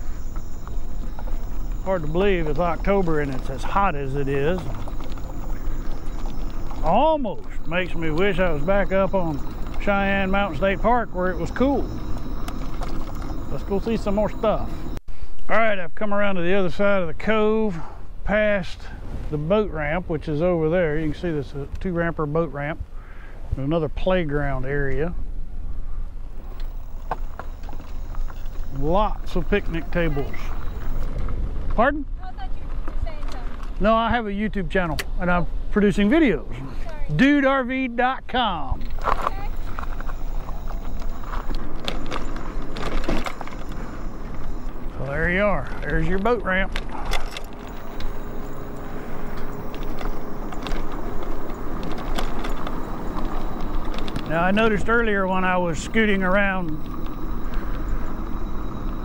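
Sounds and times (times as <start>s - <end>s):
wind rumbling on microphone: 0.0s - 15.0s, 38.8s - 59.0s.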